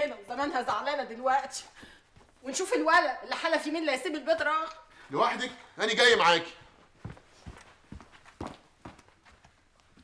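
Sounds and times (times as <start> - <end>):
brisk footsteps: 6.4 - 10.0.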